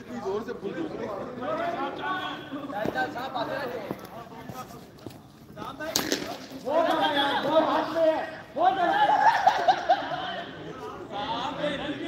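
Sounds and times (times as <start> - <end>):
men talking and calling out: 0.0 - 12.0
sharp crack: 5.8 - 6.7.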